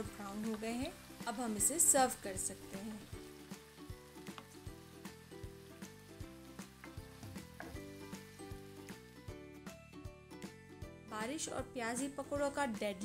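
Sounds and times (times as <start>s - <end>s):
background music with steady beat: 0.0s - 13.0s
fritters sizzling in hot oil: 0.0s - 13.0s.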